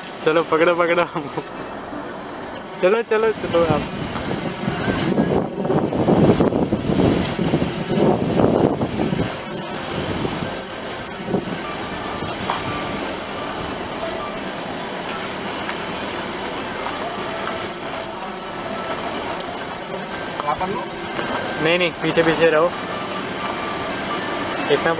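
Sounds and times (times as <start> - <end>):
car engine and road noise: 0.0 - 24.9.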